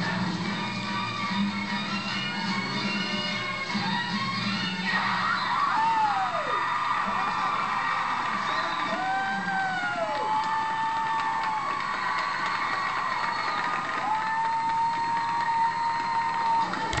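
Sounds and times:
audience cheering: 0:04.9 - 0:17.0
high whoops: 0:05.3 - 0:07.6, 0:08.8 - 0:17.0
audience clapping: 0:05.8 - 0:17.0.

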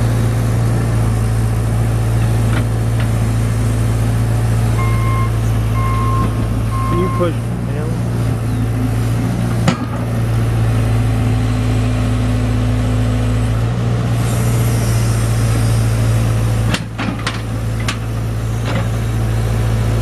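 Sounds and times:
diesel engine running: 0:00.0 - 0:20.0.

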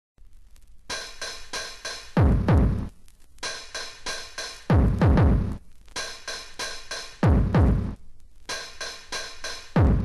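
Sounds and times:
electronic hi-hat hits: 0:00.9 - 0:10.0.

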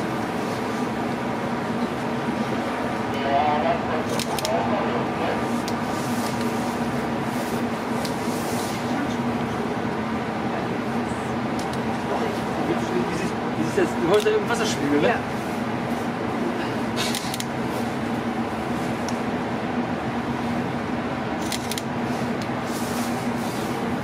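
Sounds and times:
ship machinery humming: 0:00.0 - 0:24.0.

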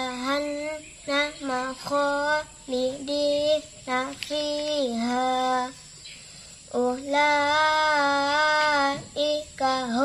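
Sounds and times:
boy chanting recitation: 0:00.0 - 0:10.0.

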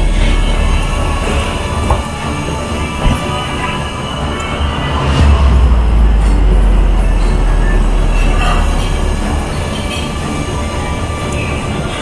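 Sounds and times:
faint background music: 0:00.0 - 0:12.0
loud low rumble: 0:03.2 - 0:11.3.

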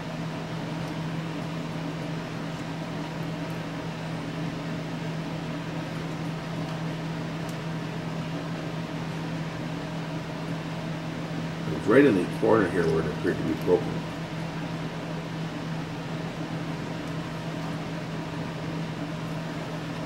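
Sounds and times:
steady mechanical hum: 0:00.0 - 0:20.0.

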